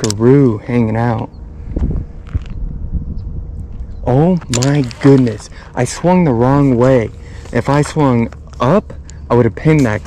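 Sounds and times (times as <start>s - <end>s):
wind noise: 1.1s - 9.3s
camera handling noise: 1.8s - 2.6s, 3.8s - 5.4s
reel clicks: 4.4s - 5.4s.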